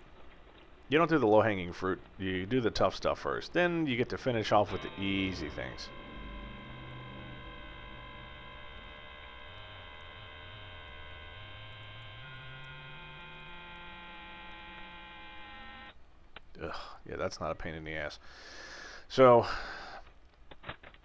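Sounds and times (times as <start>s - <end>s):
electronic hum of held tones: 4.2s - 16.0s.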